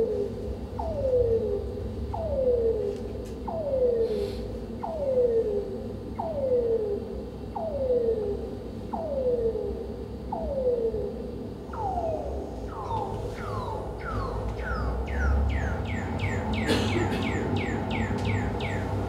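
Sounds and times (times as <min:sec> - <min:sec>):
low steady rumble: 0:00.0 - 0:19.0
downward gliding tones: 0:11.7 - 0:16.6.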